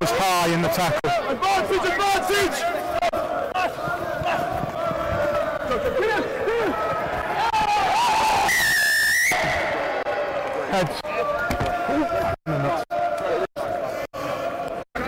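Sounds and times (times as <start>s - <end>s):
people shouting: 0.0s - 14.9s.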